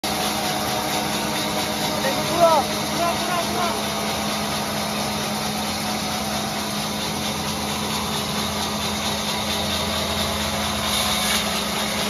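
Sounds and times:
band saw running: 0.0 - 12.0.

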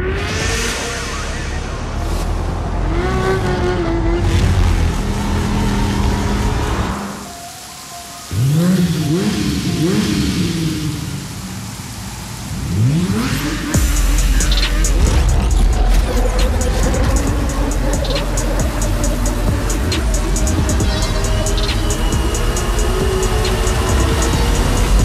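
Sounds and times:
motorcycle engine revving: 8.3 - 25.0.

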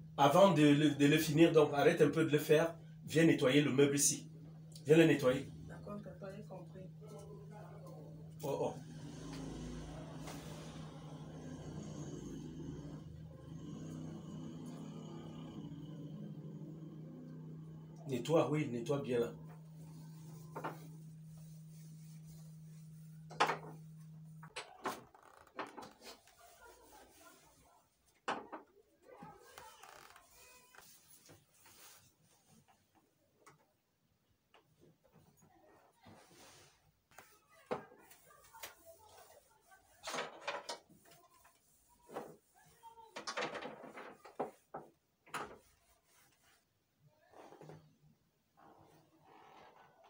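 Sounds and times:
low hum: 0.0 - 25.4
rubbing and scraping on cabinet: 19.4 - 28.6, 36.1 - 46.8
cloth wiping: 19.6 - 23.3, 26.0 - 27.8, 30.4 - 32.6, 45.5 - 46.8.

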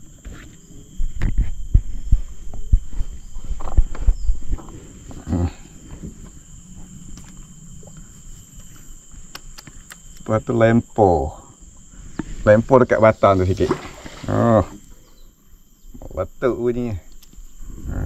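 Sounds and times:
insects droning: 0.0 - 18.0.

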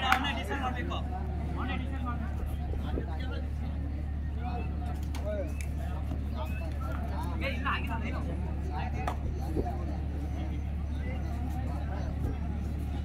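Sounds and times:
players and onlookers calling: 0.0 - 13.0.

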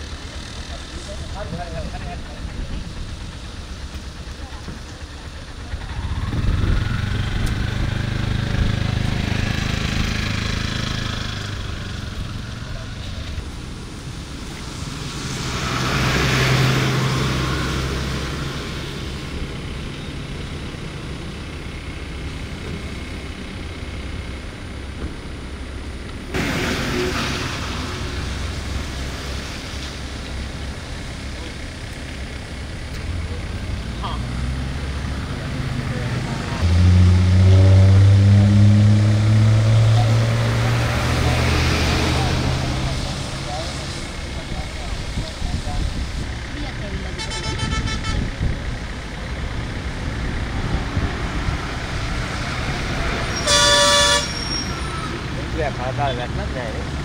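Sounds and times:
heavy diesel engine revving: 0.0 - 57.0
vehicles passing on a wet road: 0.0 - 57.0.

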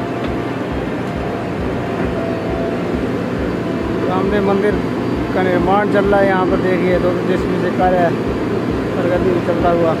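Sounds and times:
diesel engine running: 0.0 - 10.0.

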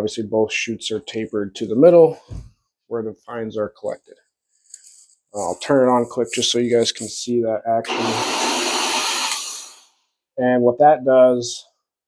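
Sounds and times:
electric drill running: 7.9 - 9.9.

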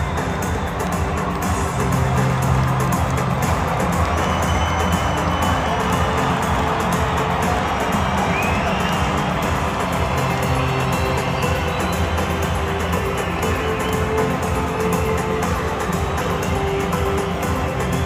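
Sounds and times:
large crowd noise: 0.0 - 18.0
music over stadium loudspeakers: 0.0 - 18.0.

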